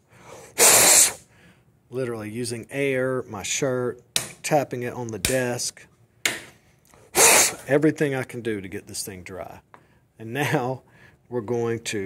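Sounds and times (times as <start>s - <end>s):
hard puff of breath: 0.0s - 1.6s, 7.0s - 7.7s.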